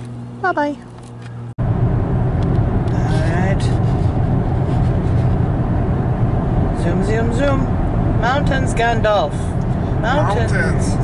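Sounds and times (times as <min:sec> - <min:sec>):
car road noise at highway speed: 0:00.0 - 0:11.0.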